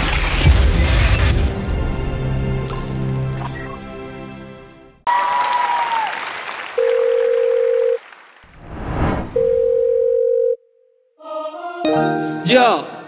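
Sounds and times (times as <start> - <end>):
long electronic beeps: 2.7 - 4.0
audience cheering and clapping: 5.1 - 8.6
whooshing swell: 8.5 - 9.4.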